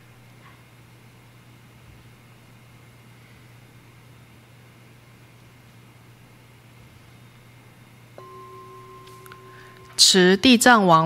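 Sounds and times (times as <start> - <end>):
faint low hum: 0.0 - 11.0
bell ringing: 8.2 - 10.4.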